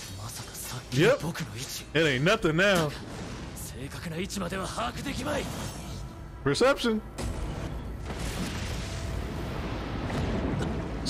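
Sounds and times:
rumble of battle effects: 0:07.1 - 0:11.0.

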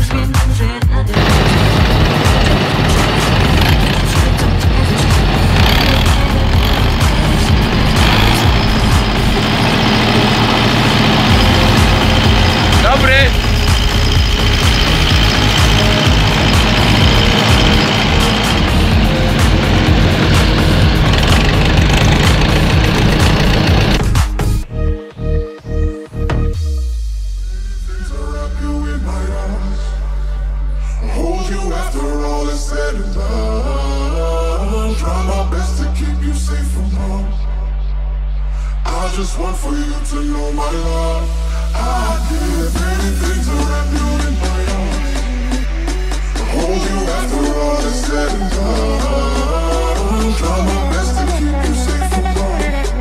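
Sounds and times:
tractors running: 0:01.1 - 0:24.6, 0:46.4 - 0:53.0
rising whine: 0:01.2 - 0:24.2
forage harvester chopping: 0:01.2 - 0:24.3.

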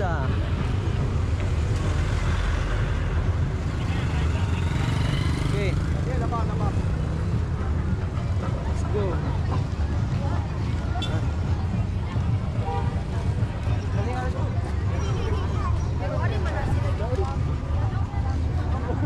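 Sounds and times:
scattered crowd voices: 0:00.0 - 0:19.0.

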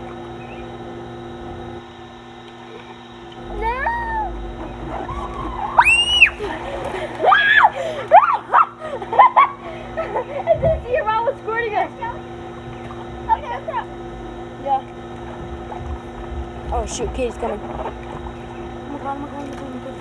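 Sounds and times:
girls squealing: 0:03.4 - 0:09.6.

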